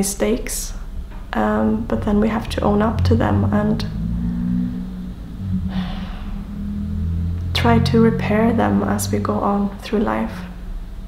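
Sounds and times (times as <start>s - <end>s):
steady low room hum: 0.0s - 11.0s.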